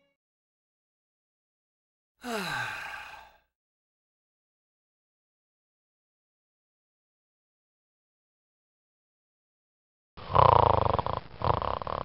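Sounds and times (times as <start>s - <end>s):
man sighing: 2.2s - 3.4s.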